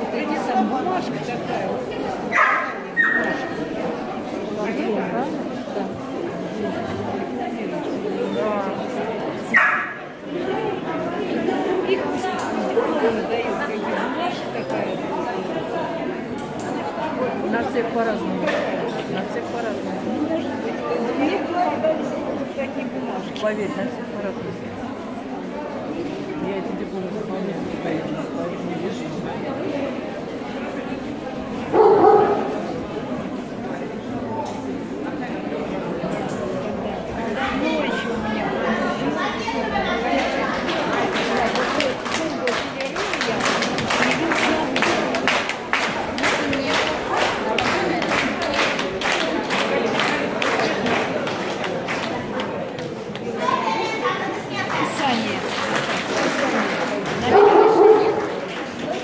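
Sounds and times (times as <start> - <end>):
people chattering in a hall: 0.0 - 59.0
dog barking: 2.3 - 3.3, 9.5 - 10.0, 31.7 - 32.6, 57.3 - 58.2.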